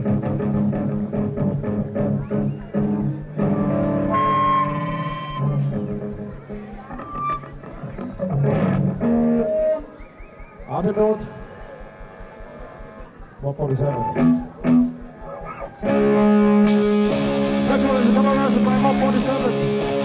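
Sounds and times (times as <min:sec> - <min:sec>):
electric guitar notes and chords: 0:00.0 - 0:10.1, 0:10.9 - 0:20.0
indistinct voices: 0:09.3 - 0:16.0.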